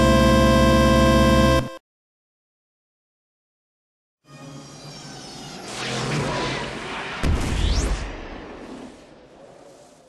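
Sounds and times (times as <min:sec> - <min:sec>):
whoosh: 0:04.3 - 0:10.0
deep boom: 0:07.1 - 0:08.6.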